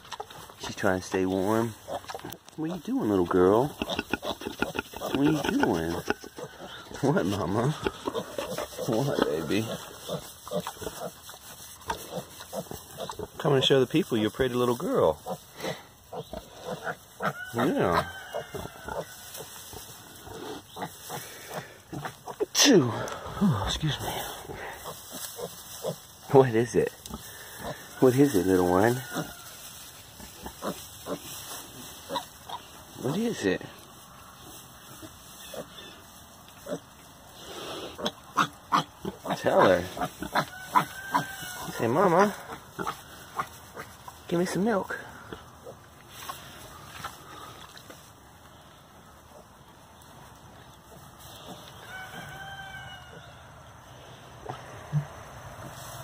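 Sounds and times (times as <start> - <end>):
pigs grunting: 0.0 - 13.8, 19.7 - 29.3, 30.2 - 33.7, 36.6 - 44.0, 54.4 - 55.8
piglet grunting: 3.7 - 11.2.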